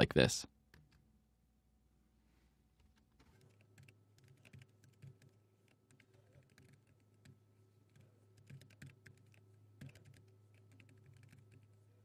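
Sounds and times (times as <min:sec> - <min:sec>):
typing on keyboard: 0:02.8 - 0:11.8.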